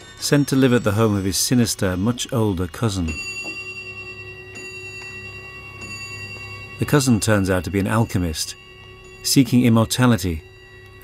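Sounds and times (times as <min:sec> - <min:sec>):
clock bell striking: 0:00.0 - 0:11.0.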